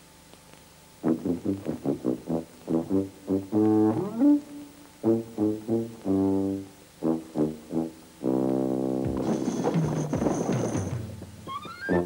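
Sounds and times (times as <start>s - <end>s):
low brass instrument notes: 1.0s - 10.0s.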